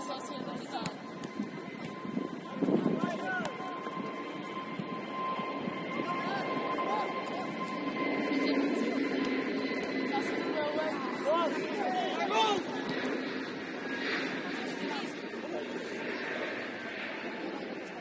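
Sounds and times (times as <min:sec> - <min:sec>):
players calling and shouting: 0:00.0 - 0:05.0, 0:09.8 - 0:16.0
outdoor background noise: 0:00.0 - 0:18.0.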